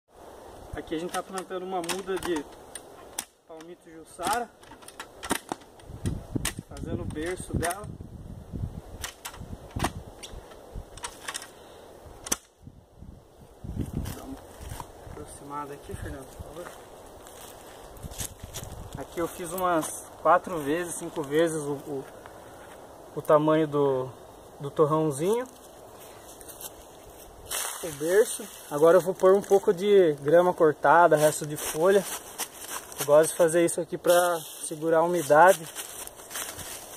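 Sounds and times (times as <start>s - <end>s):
outdoor background hiss: 0.1s - 36.9s.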